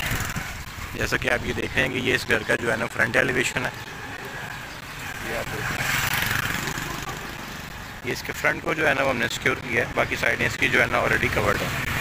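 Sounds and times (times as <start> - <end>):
vehicle passing by: 3.2 - 8.0.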